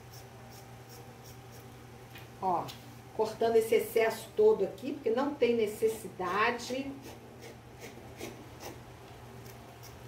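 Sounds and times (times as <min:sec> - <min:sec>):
scissors snipping: 0:09.4 - 0:10.0.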